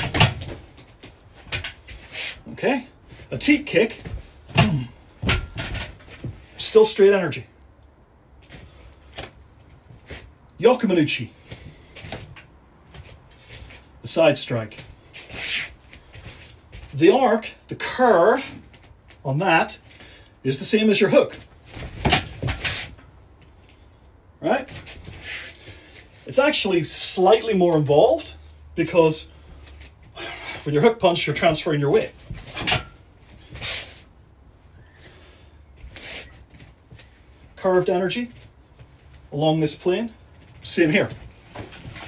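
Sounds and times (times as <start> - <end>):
bare feet shifting on a mat: 11.3 - 13.9, 14.7 - 17.1, 34.8 - 37.6, 38.2 - 39.4.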